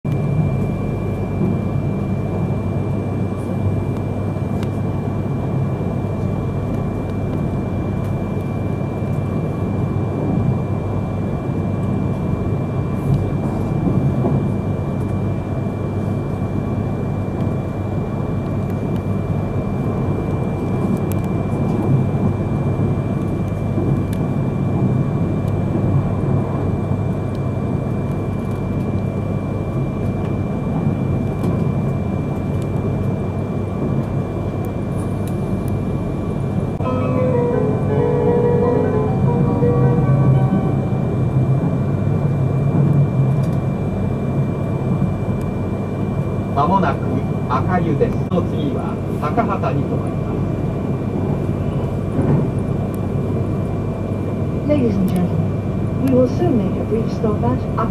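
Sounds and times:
train cabin rumble: 0.2 - 57.9
chime melody: 36.8 - 41.6.

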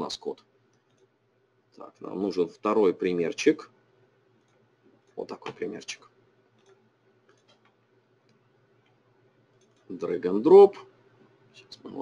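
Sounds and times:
computer mouse clicks: 0.7 - 1.1, 4.4 - 5.6, 6.5 - 9.9.

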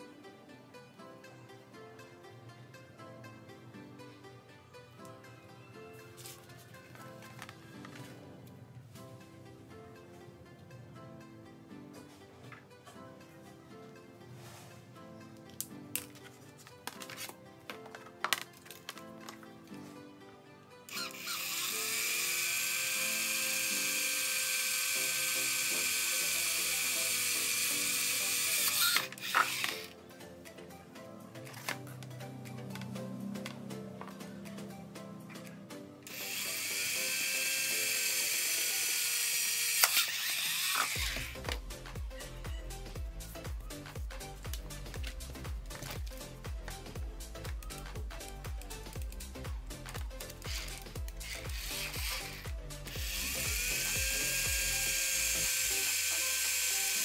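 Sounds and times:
cordless drill whining: 20.9 - 30.0, 36.1 - 41.6, 50.4 - 57.0.

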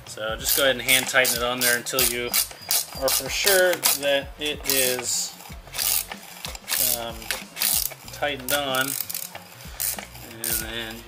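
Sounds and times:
socket ratchet clicking: 0.4 - 11.0.

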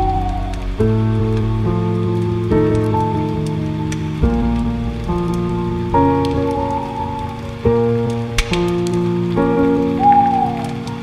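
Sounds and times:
mellow piano chords: 0.0 - 11.0
rain pattering: 0.0 - 11.0.

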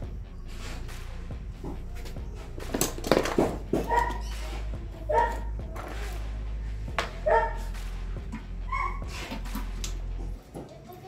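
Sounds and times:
steady low hum: 0.0 - 10.4
dog barking: 3.8 - 4.3, 5.0 - 5.5, 7.2 - 7.7.

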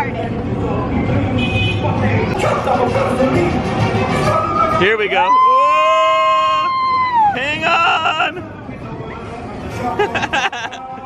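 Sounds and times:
people's voices: 0.0 - 11.0
ride cars rumbling: 0.0 - 11.0.

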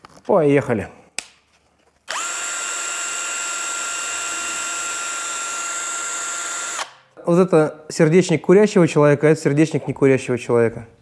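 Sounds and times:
cordless drill high whine: 2.1 - 6.9.

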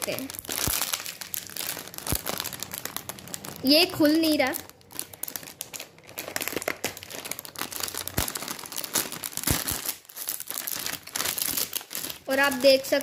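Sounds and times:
plastic snack packet crinkling: 0.0 - 13.0.

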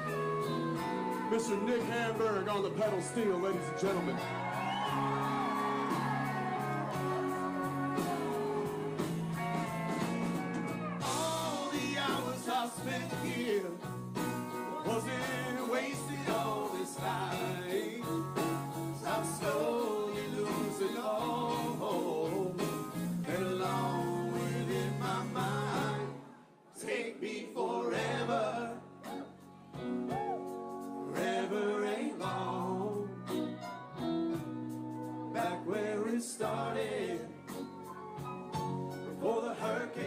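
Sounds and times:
country-rock band playing: 0.0 - 26.2, 27.9 - 40.0
two men singing: 11.0 - 29.2, 31.0 - 33.5, 35.3 - 37.6, 39.1 - 40.0.

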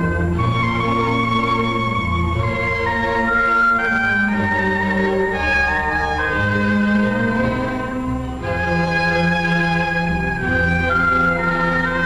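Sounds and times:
orchestral strings holding long notes: 0.0 - 12.0.

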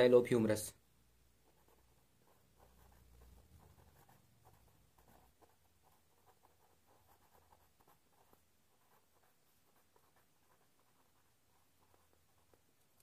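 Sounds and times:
pen scratching on paper: 1.4 - 13.0.

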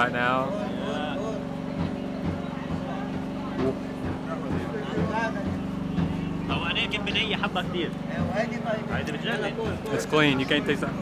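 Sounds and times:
faint chatter of voices: 0.0 - 11.0
low motor hum: 0.0 - 11.0.

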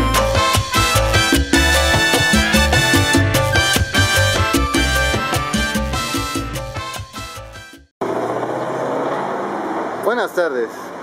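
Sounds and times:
street traffic noise: 8.0 - 11.0
vehicle engine running nearby: 8.0 - 11.0.

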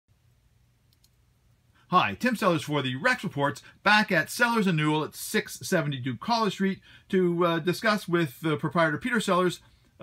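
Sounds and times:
faint clicks: 0.9 - 1.2
man speaking: 1.9 - 9.6.

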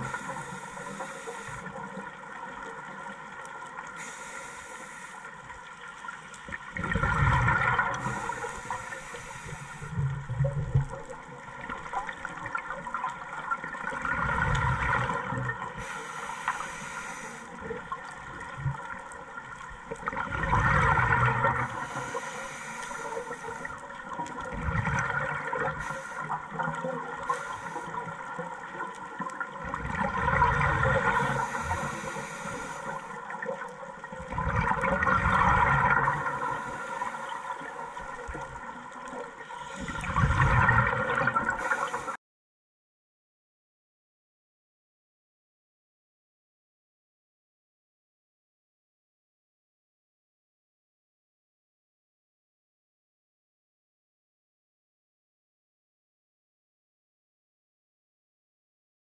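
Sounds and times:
scuba regulator exhale bubbling: 0.0 - 2.0, 6.8 - 11.2, 12.1 - 18.8, 20.0 - 42.2.

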